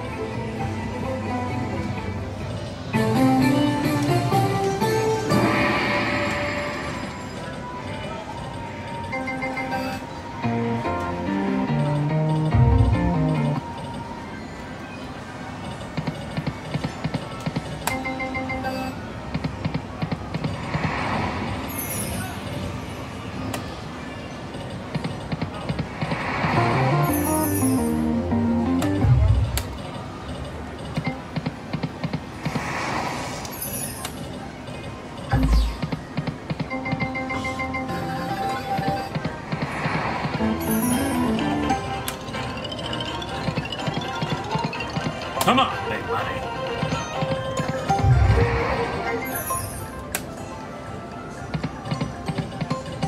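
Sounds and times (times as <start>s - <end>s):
slot machine reels settling: 26.6s - 28.3s, 40.4s - 46.0s, 48.7s - 50.1s.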